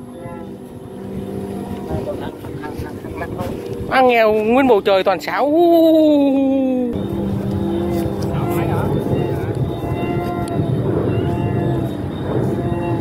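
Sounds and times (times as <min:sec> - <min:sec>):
kite flutes droning: 0:00.0 - 0:13.0.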